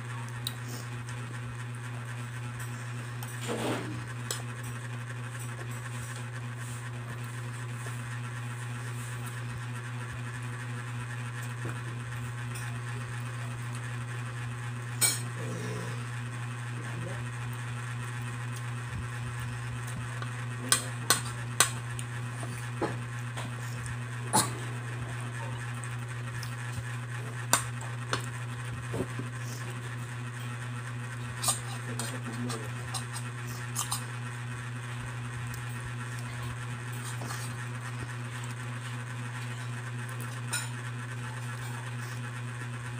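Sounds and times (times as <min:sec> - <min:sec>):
steady low hum: 0:00.0 - 0:42.9
close-up eating noises: 0:15.2 - 0:42.4
cutlery scraping on a plate: 0:31.4 - 0:34.1, 0:36.9 - 0:37.6
fork clinking against plate: 0:32.9 - 0:34.1.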